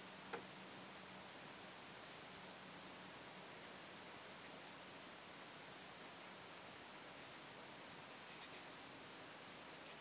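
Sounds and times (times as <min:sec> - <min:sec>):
faint hiss: 0:00.0 - 0:10.0
brush dabbing on paper: 0:08.2 - 0:08.8.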